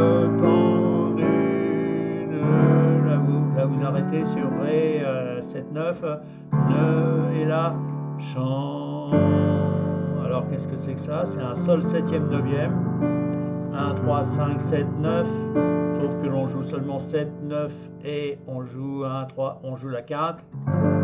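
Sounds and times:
man singing: 0.0s - 12.8s, 13.7s - 20.4s
digital piano chords: 0.0s - 21.0s.

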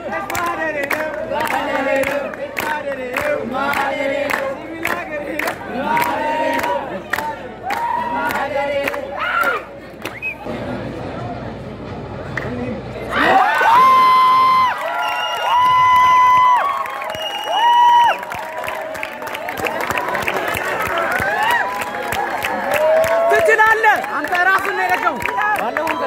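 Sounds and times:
crowd cheering and shouting: 5.6s - 10.4s, 13.1s - 26.0s.

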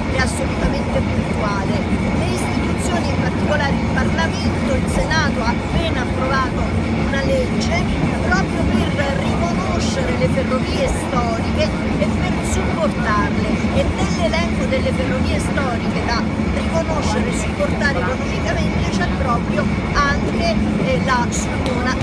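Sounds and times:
railway carriage rumbling on track: 0.0s - 22.0s
woman talking: 0.0s - 22.0s.

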